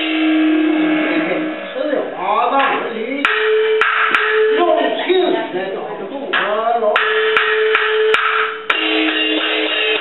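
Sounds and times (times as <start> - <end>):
held instrumental note: 0.0 - 5.0, 7.0 - 10.0
wood block strikes: 0.0 - 5.0, 6.3 - 10.0.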